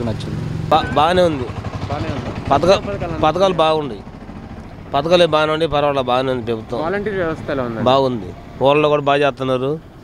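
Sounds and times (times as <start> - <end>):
traffic engine hum: 0.0 - 10.0
man speaking: 0.7 - 4.0.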